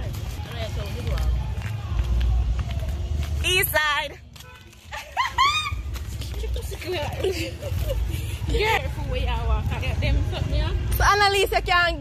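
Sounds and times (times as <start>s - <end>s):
faint voices talking: 0.0s - 4.9s.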